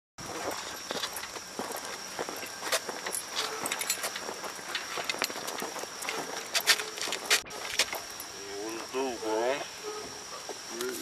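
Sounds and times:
footsteps and scuffs on pavement: 0.2 - 8.1.

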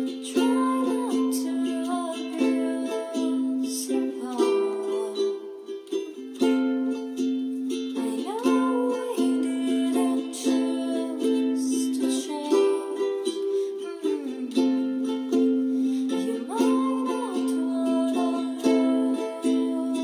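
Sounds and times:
woman singing: 0.0 - 5.8, 7.9 - 15.4, 16.0 - 20.0
strummed ukulele: 0.0 - 20.0.

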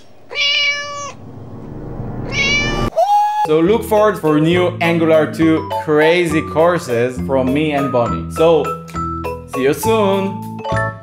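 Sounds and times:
cat meowing: 0.2 - 1.2, 2.2 - 2.9.

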